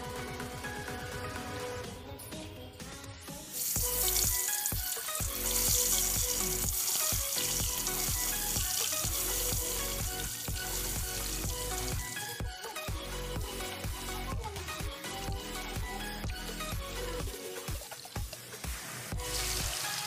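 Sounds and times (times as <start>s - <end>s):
background music with steady beat: 0.0s - 20.0s
oil sizzling and bubbling: 3.5s - 12.4s, 17.1s - 20.0s.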